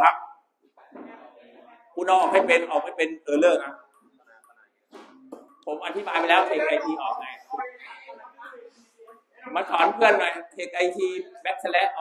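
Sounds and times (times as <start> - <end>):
man speaking: 0.0 - 0.4, 1.2 - 3.9, 5.6 - 7.5, 9.5 - 12.0.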